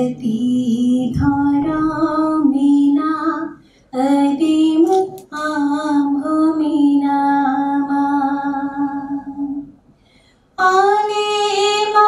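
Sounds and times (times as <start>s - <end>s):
woman singing: 0.0s - 9.7s, 10.6s - 12.0s.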